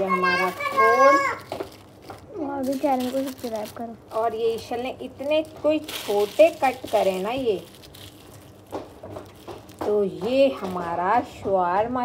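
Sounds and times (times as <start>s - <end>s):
person speaking: 0.0s - 7.8s.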